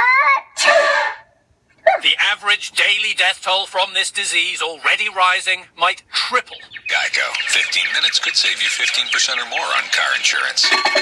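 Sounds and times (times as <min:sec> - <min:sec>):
cartoon sneeze: 0:00.5 - 0:01.2.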